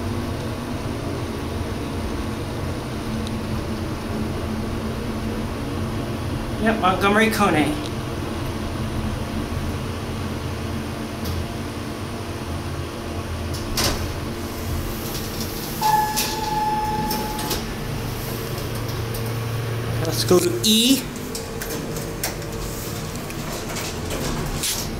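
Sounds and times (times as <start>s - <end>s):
elevator hum: 0.0s - 24.9s
elevator doors sliding open: 13.4s - 24.9s
elevator stopping clunk: 13.5s - 20.2s, 21.0s - 24.9s
electronic beep: 15.8s - 17.6s.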